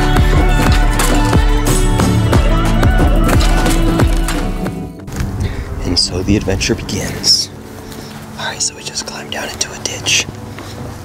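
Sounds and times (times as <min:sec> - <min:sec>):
whispering voices: 0:08.4 - 0:10.4.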